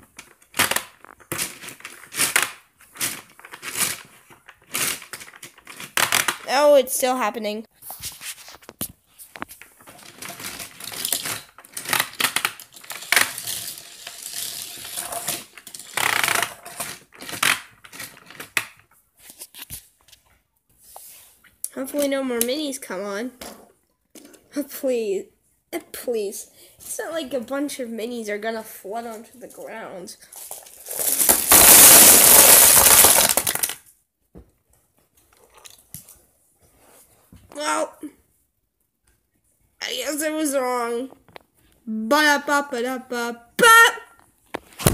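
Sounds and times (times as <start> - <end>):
toy trains clattering on plastic track: 9.9 - 18.6
plastic toys clattering on wooden table: 30.3 - 33.8.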